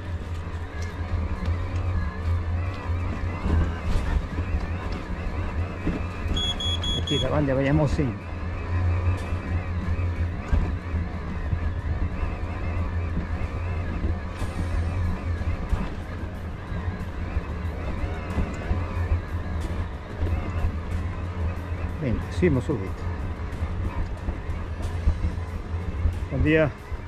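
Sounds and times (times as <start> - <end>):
electric bike motor drone: 0.0 - 27.0
tyres and drivetrain ticking: 0.0 - 27.0.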